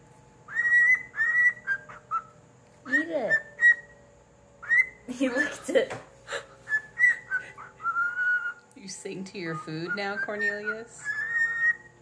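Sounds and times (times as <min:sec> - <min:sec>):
cockatiel whistling: 0:00.5 - 0:04.0, 0:04.6 - 0:05.1, 0:06.7 - 0:08.6, 0:09.4 - 0:12.0.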